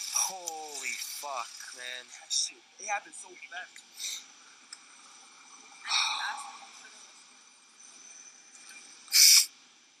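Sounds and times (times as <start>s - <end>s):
faint high-pitched background: 0.0s - 10.0s
hissing screech: 9.1s - 9.5s.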